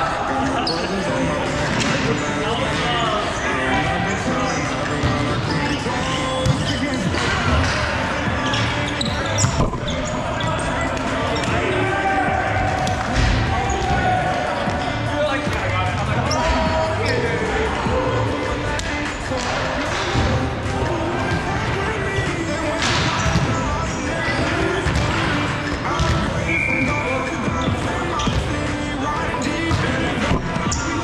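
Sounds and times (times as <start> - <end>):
music in echoing hall: 0.0 - 31.0
players' voices: 0.0 - 31.0.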